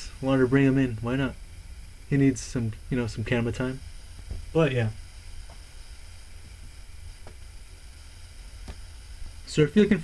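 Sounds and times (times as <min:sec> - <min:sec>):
low hum: 0:00.0 - 0:10.0
steady hiss: 0:00.0 - 0:10.0.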